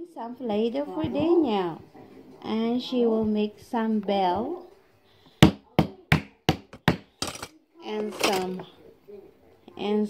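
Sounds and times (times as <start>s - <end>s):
rolling pin knocking on wooden table: 5.4s - 7.5s.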